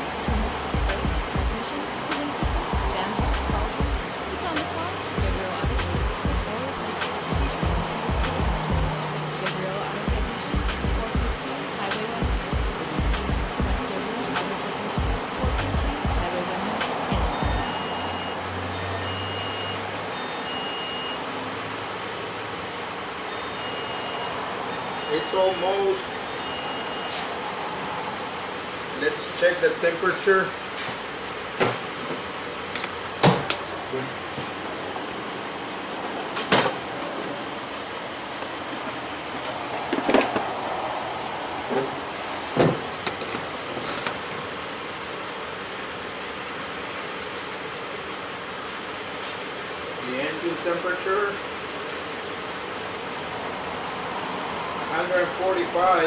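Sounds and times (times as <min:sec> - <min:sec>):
car engine idling: 0:00.0 - 0:31.5
background music with low beat: 0:00.3 - 0:04.6, 0:05.2 - 0:11.4, 0:12.2 - 0:13.9, 0:14.5 - 0:17.7
short high tones: 0:17.3 - 0:21.4, 0:23.3 - 0:27.4.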